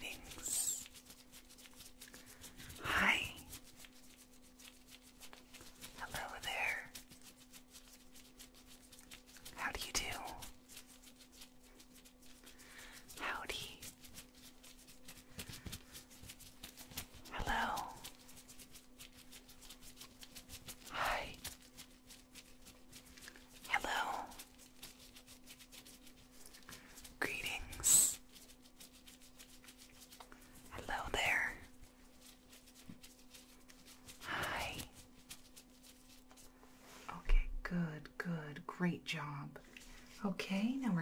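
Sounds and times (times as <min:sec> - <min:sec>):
person whispering close: 0:00.0 - 0:00.9, 0:02.7 - 0:03.7, 0:05.9 - 0:07.0, 0:09.5 - 0:10.5, 0:13.0 - 0:14.0, 0:17.2 - 0:18.2, 0:20.9 - 0:21.6, 0:23.6 - 0:24.5, 0:26.7 - 0:28.3, 0:30.6 - 0:31.7, 0:34.1 - 0:35.0, 0:37.0 - 0:41.0
gloved fingers rustling: 0:00.0 - 0:37.1.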